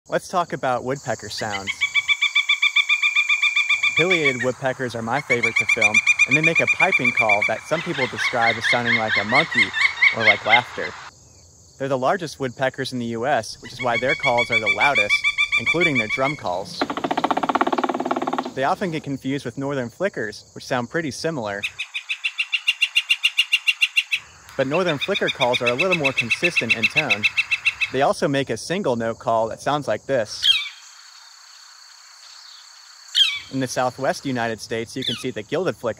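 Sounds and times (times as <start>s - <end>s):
woodpecker piping call: 1.4s - 11.1s, 13.6s - 19.0s, 21.6s - 28.0s, 30.4s - 31.6s, 32.2s - 33.6s, 35.0s - 35.4s.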